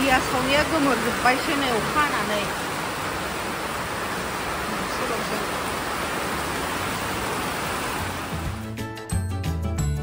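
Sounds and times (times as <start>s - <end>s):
heavy rain on paved ground: 0.0s - 8.8s.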